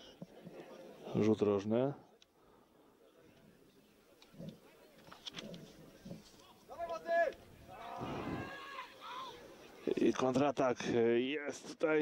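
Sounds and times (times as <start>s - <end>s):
men shouting outdoors: 6.7s - 9.5s.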